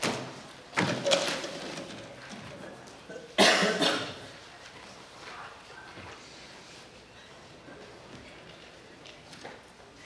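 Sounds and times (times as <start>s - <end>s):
person coughing: 3.1s - 4.2s.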